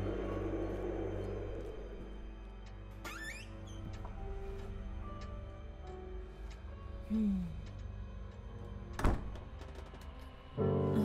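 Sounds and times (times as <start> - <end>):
quiet background music: 0.0 - 11.0
wooden door shutting: 8.9 - 10.0.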